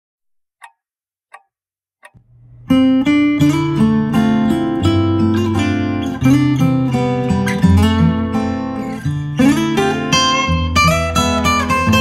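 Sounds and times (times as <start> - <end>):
count-in ticks: 0.6 - 2.2
fingerpicked acoustic guitar: 2.6 - 12.0.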